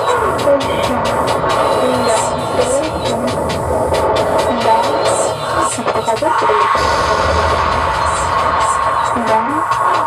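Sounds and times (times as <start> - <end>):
low bass rumble: 0.0 - 10.0
noisy electronic music: 0.0 - 10.0.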